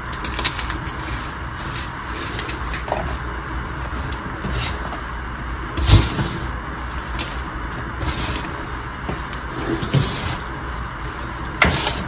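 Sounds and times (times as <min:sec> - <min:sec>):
hands crushing chalk: 0:00.0 - 0:02.9.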